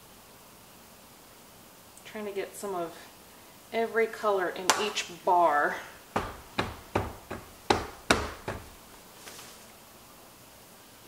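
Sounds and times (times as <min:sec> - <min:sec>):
silicone mold knocking on table: 0:06.2 - 0:08.9.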